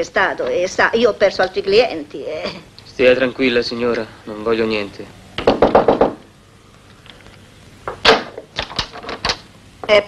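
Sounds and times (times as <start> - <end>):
knocking on a wooden door: 5.4 - 6.3.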